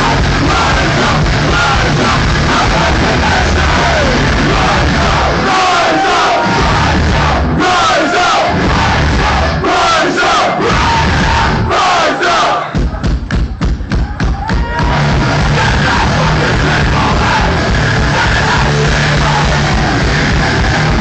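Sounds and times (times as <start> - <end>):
punk band playing live: 0.0 - 12.0, 12.6 - 21.0
shouted vocals: 0.0 - 12.8, 14.0 - 21.0
crowd yelling along: 0.0 - 13.0, 13.9 - 21.0.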